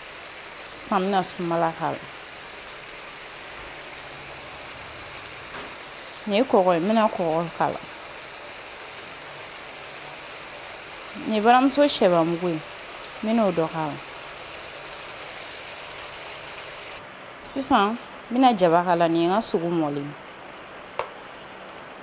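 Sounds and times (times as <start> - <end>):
food sizzling in a pan: 0.0 - 20.0.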